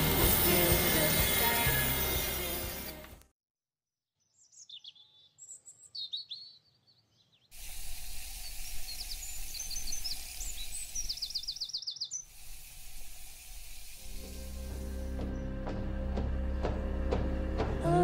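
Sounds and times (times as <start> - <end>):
small birds chirping: 4.2 - 12.4
background hiss: 7.5 - 15.3.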